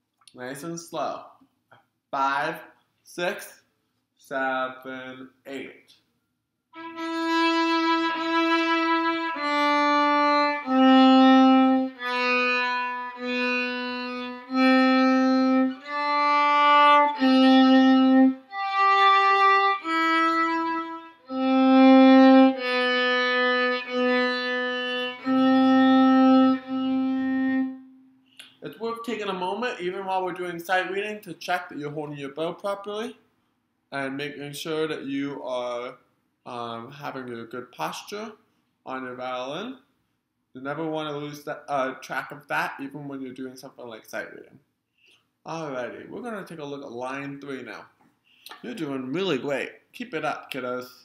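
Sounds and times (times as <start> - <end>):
bowed violin notes: 6.8 - 28.1.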